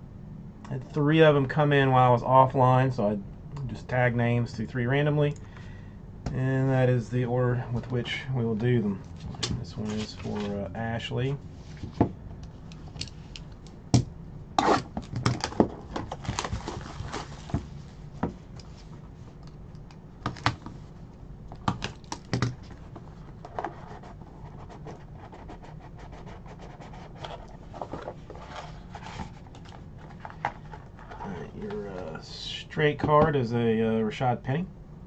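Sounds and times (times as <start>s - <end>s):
cardboard box crinkling and scraping: 15.5s - 17.7s, 27.1s - 31.7s.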